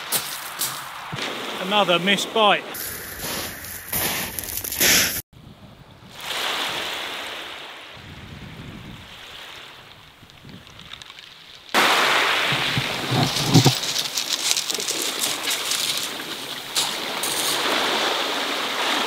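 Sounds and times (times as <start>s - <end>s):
rough surf: 0.0s - 5.2s, 6.1s - 10.0s, 11.8s - 19.0s
waves washing on shingle beach: 0.0s - 5.2s, 6.1s - 19.0s
wind noise: 2.6s - 6.7s, 8.0s - 11.2s, 11.8s - 18.2s.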